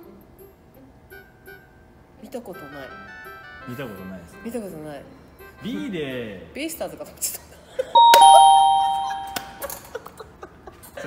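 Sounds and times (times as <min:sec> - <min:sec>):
two-note ding-dong chime: 0:08.0 - 0:09.6.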